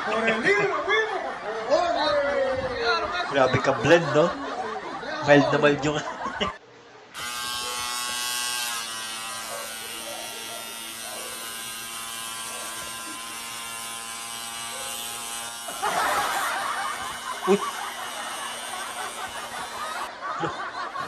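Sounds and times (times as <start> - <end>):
electric hair trimmer buzzing: 7.1 - 20.1.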